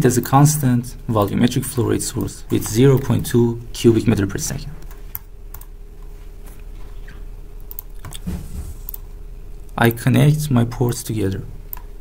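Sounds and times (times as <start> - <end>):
steady low hum: 0.0 - 12.0
computer mouse clicks: 4.8 - 5.7, 7.6 - 9.1.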